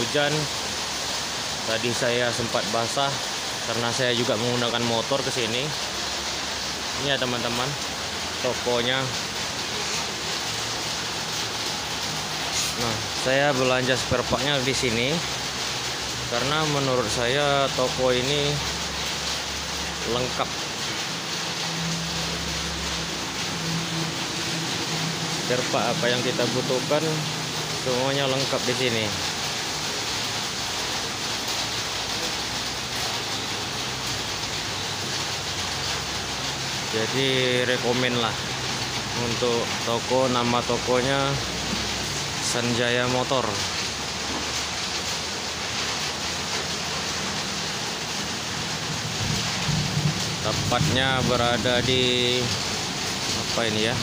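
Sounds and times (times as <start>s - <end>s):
steady rain falling: 0.0s - 54.0s.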